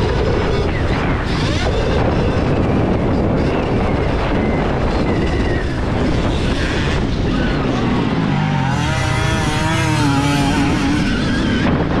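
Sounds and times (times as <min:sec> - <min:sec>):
electric motorbike motor whine: 0:00.0 - 0:12.0
wind: 0:00.0 - 0:12.0.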